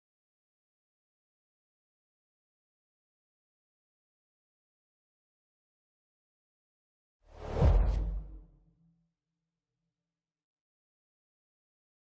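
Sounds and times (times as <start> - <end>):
whoosh with deep rumble: 7.3 - 8.6.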